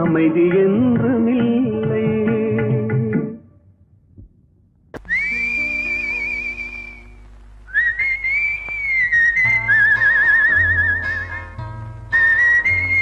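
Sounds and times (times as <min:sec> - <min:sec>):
whistled melody: 0:05.0 - 0:11.5, 0:12.1 - 0:13.0.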